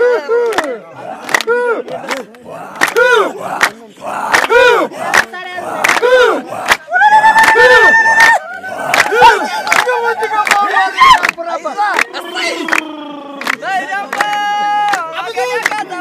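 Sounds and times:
voices shouting cries: 0.0s - 16.0s.

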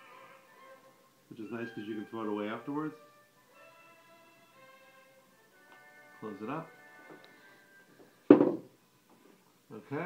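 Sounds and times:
plastic bottle knocking on wood: 8.3s - 8.7s.

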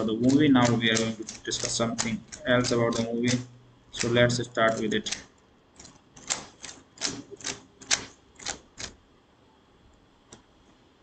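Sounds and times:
computer keyboard clicks: 0.2s - 3.4s, 4.0s - 9.0s.

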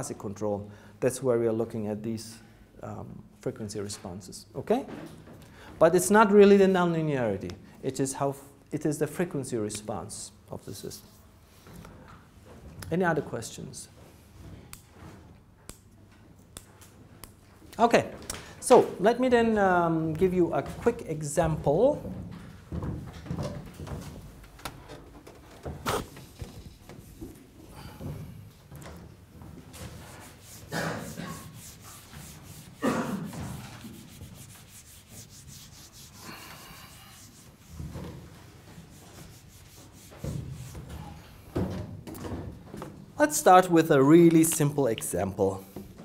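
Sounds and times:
eraser rubbing on whiteboard: 29.7s - 41.2s.

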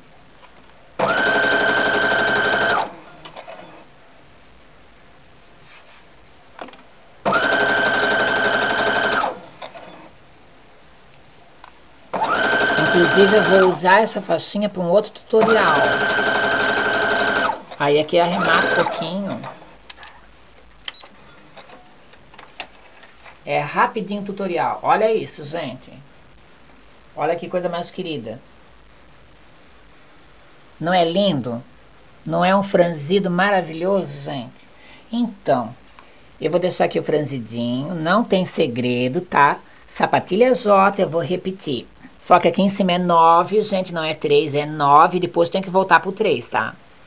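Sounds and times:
sewing machine whine: 1.0s - 3.6s, 7.2s - 9.5s, 12.1s - 13.8s, 15.4s - 17.7s, 18.3s - 19.0s
sewing machine clicks: 15.4s - 17.8s, 18.4s - 19.0s.

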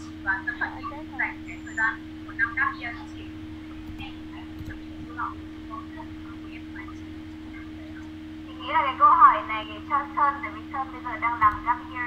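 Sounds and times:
electrical hum: 0.0s - 12.0s
speech over call line: 0.0s - 12.0s.

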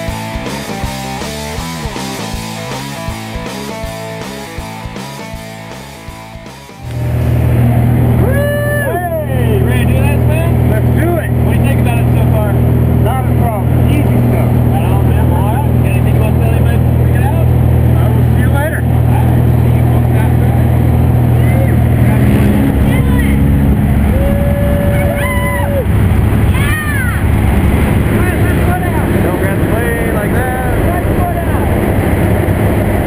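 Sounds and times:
music: 0.0s - 7.1s
plane engine drone: 6.8s - 33.0s
voices shouting: 8.0s - 9.8s, 22.7s - 27.6s.

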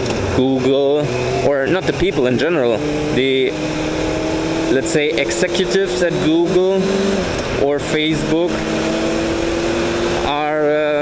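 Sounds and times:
motorcycle engine: 0.0s - 11.0s.

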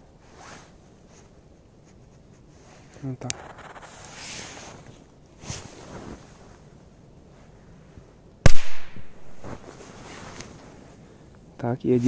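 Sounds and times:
firecracker bang: 8.5s - 9.4s.

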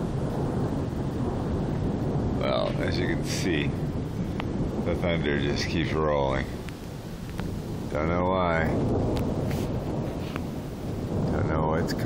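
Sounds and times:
distant rolling thunder: 0.0s - 12.0s.

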